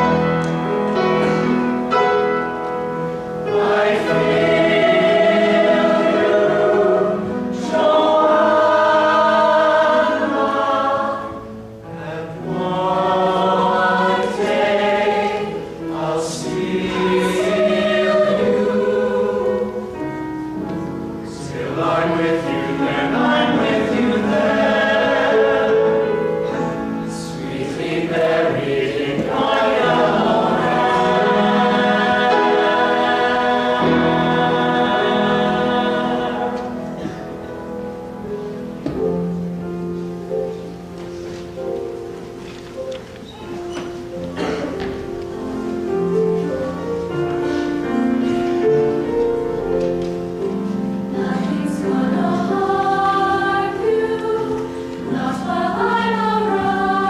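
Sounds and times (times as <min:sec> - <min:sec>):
choir singing: 0:00.0 - 0:39.4, 0:43.6 - 0:57.0
singers breathing: 0:47.4 - 0:47.8.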